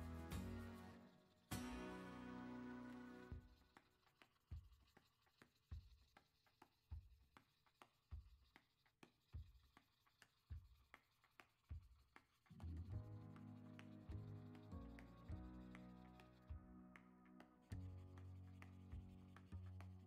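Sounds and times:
background music: 0.0s - 3.5s, 12.6s - 20.0s.

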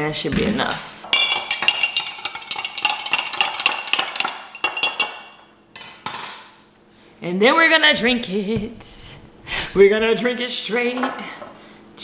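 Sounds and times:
spoon clinking in glass jar: 1.1s - 6.5s.

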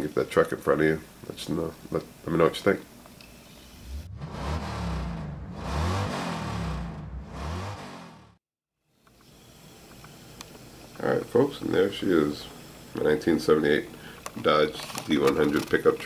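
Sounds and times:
car engine revving: 3.8s - 8.4s.

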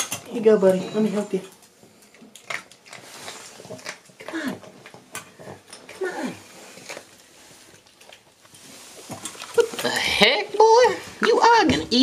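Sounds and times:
kibble clicking on tile floor: 1.4s - 6.0s.

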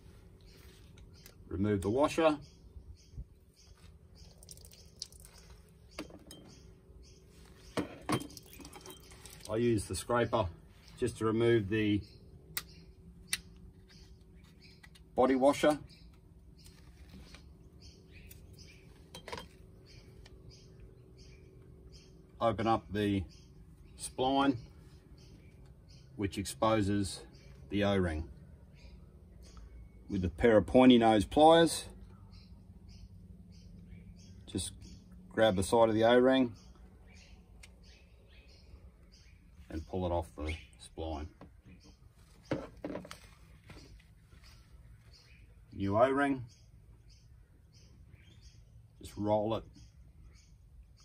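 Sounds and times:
faint birds chirping: 0.0s - 51.0s.

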